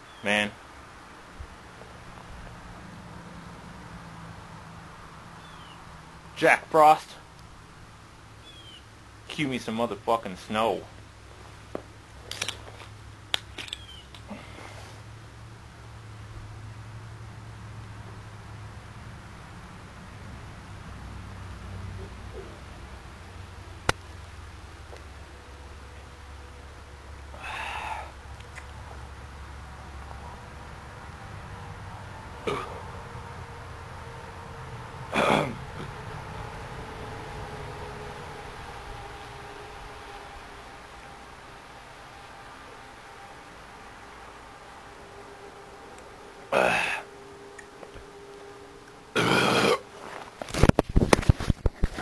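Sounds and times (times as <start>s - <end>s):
man's hiccup-like throat sound: 32.5s - 32.8s, 35.1s - 35.9s, 49.2s - 49.9s.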